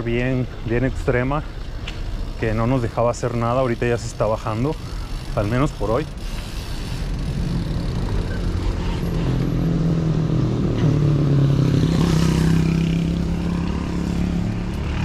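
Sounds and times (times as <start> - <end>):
low riding rumble: 0.0 - 15.0
vehicle engine humming: 0.0 - 15.0.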